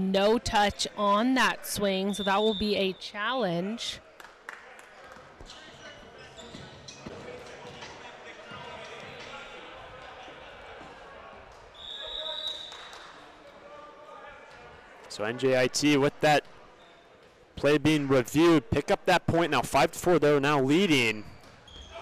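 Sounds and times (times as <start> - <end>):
referee's whistle: 2.1 - 3.2, 11.7 - 13.0
echoing murmur of voices: 3.8 - 15.1.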